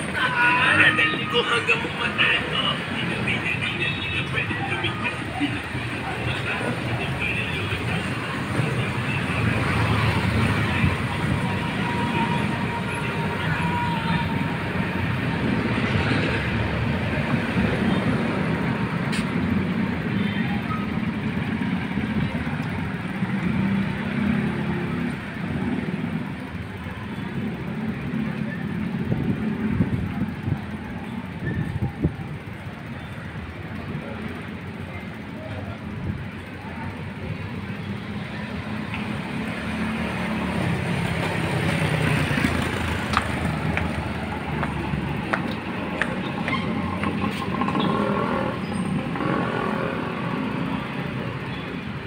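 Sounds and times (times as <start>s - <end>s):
indistinct voices: 0.0s - 51.2s
road traffic hum: 0.0s - 52.0s.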